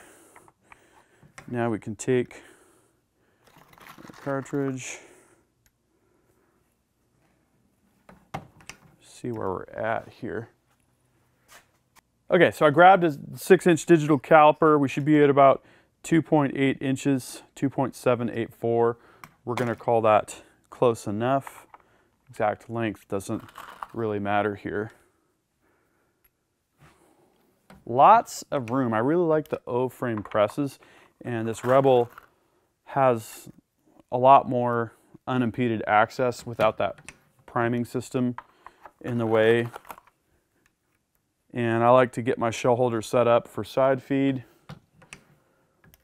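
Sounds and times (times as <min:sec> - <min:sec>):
faint handling noise: 0:03.4 - 0:04.8, 0:26.2 - 0:32.4, 0:38.3 - 0:41.3.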